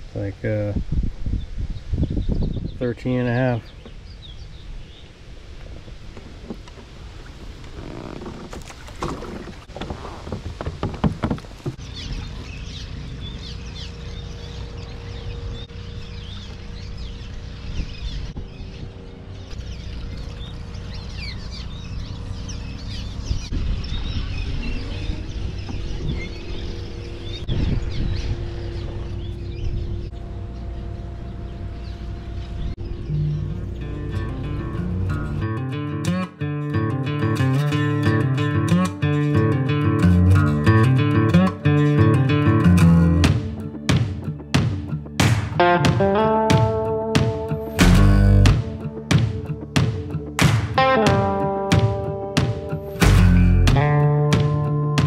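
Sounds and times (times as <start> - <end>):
flock of birds chirping: 1.3 - 5.2, 10.6 - 35.5
knocks and clatters: 8.2 - 11.8
low rumble: 12.1 - 35.8, 43.3 - 50.4.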